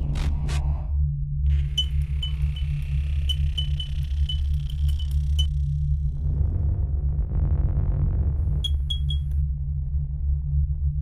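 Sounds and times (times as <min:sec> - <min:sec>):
deep bass drone: 0:00.0 - 0:11.0.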